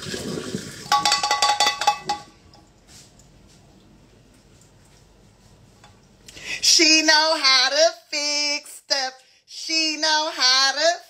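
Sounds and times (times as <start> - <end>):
hot water poured into sink: 0.0 - 1.2
pot clattering against metal sink: 0.8 - 2.4.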